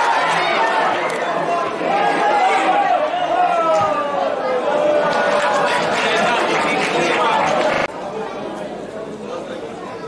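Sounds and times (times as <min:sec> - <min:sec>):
crowd of voices chattering: 0:00.0 - 0:10.0.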